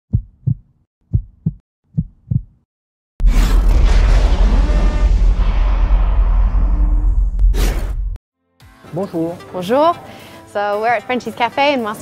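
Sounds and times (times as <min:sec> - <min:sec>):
heartbeat thumps: 0:00.1 - 0:02.7.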